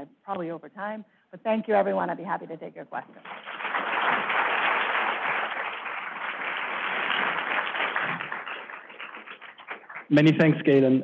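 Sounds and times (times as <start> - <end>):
audience applauding: 3.2 - 10.6.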